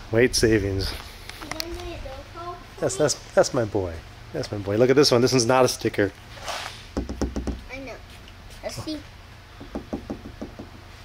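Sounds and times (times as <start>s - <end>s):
hand tapping on car bodywork: 7.0s - 7.7s, 9.6s - 10.8s.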